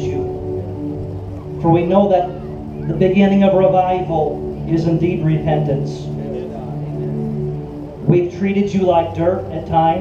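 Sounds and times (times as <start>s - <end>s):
band holding sustained chord: 0.0s - 10.0s.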